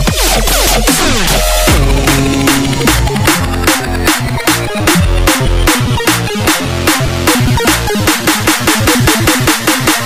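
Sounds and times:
dubstep music with growling bass: 0.0s - 10.0s.

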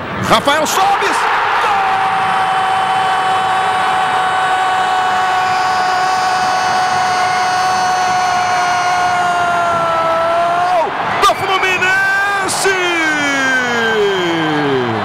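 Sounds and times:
crowd noise: 0.0s - 15.0s
commentator shouting: 0.4s - 1.9s.

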